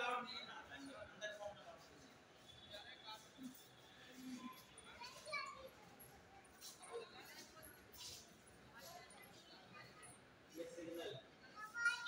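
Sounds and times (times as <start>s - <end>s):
faint background chatter: 0.0s - 12.0s
children's voices: 4.9s - 6.8s, 11.5s - 12.0s.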